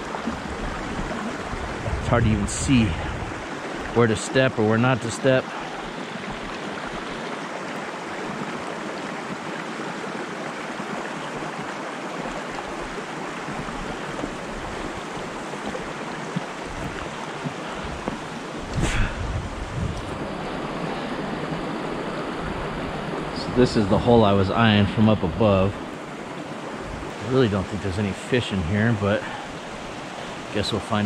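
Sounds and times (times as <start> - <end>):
mountain stream rushing over rocks: 0.0 - 31.0.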